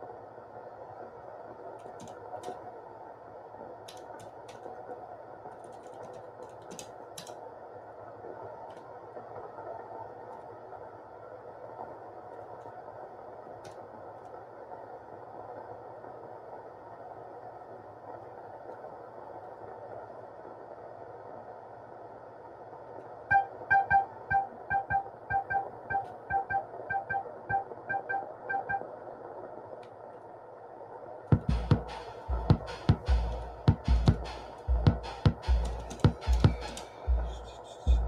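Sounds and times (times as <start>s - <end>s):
synthesizer drone: 23.3s - 28.9s, 31.4s - 38.0s
low thuds: 31.4s - 38.0s.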